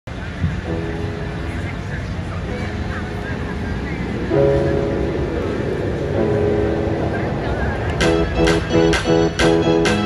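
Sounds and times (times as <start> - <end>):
low background rumble: 0.1 - 9.8
held keyboard chords: 0.1 - 10.0.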